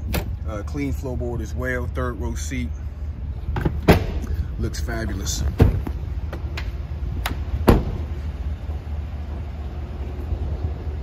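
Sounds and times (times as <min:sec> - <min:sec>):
steady low rumble: 0:00.0 - 0:11.0
car door thud: 0:03.5 - 0:04.2, 0:05.5 - 0:06.4, 0:07.3 - 0:08.1.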